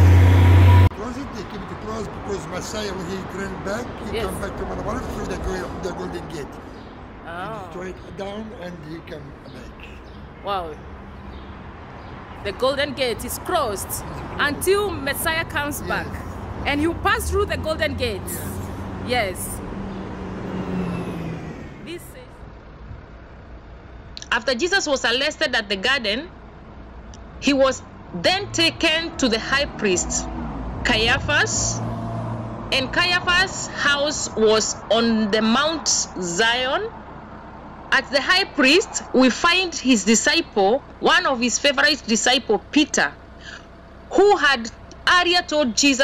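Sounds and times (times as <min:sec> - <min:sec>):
car passing close by: 0:00.0 - 0:06.9, 0:13.9 - 0:22.0, 0:29.5 - 0:34.0
traffic noise: 0:00.0 - 0:46.0
vehicle engine rumble: 0:00.0 - 0:46.0
quiet voices: 0:01.0 - 0:06.6, 0:07.2 - 0:10.8.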